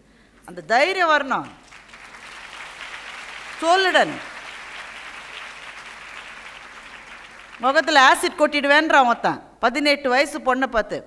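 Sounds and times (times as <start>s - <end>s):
audience applauding: 1.5s - 8.4s.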